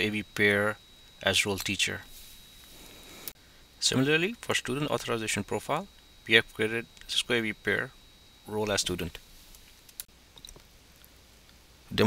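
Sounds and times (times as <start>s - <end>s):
low room hiss: 0.0s - 12.0s.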